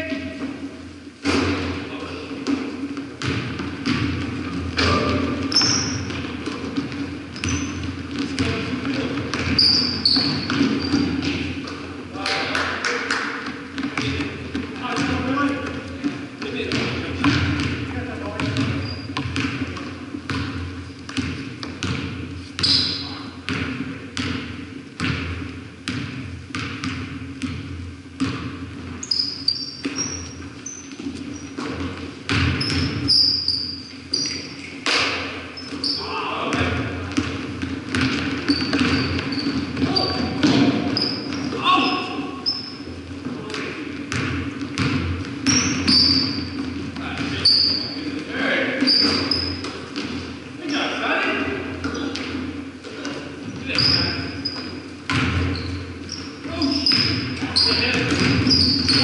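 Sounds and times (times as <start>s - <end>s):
basketballs bouncing on wooden floor: 1.2s - 59.0s
sneaker squeaks: 4.8s - 11.7s, 13.9s - 23.4s, 28.2s - 36.6s, 37.2s - 43.0s, 44.8s - 50.8s, 51.8s - 59.0s.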